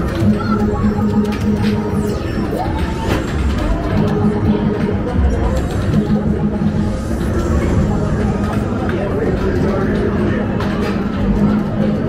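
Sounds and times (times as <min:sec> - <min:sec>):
electronic pitch sweeps and clicks: 0:00.0 - 0:09.0
arcade music: 0:00.0 - 0:12.0
crowd chatter: 0:00.0 - 0:12.0.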